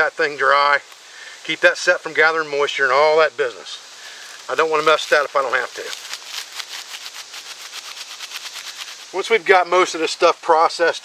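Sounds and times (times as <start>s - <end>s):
dry tinder rubbed between hands: 4.2s - 9.8s.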